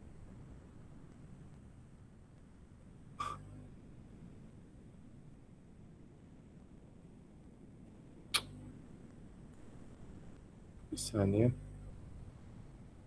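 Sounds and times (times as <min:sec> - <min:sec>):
faint steady hiss: 0:00.0 - 0:13.0
sharp click: 0:08.4 - 0:08.6.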